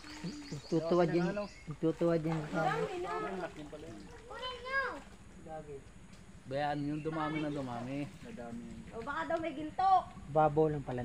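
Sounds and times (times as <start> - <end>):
people talking indistinctly: 0.2 - 11.0.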